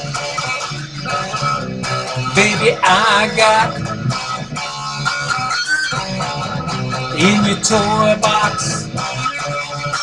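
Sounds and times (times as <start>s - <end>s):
electric guitar strumming: 0.0s - 10.0s
person singing: 2.3s - 3.8s, 7.0s - 9.0s.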